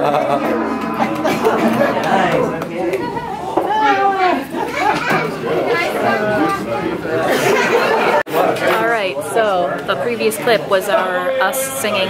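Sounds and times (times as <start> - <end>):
overlapping conversation chatter: 0.0 - 12.0.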